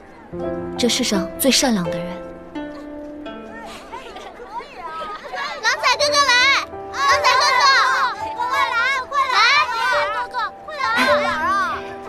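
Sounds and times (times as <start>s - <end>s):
background music with held notes: 0.0s - 12.0s
children calling out excitedly: 2.7s - 12.0s.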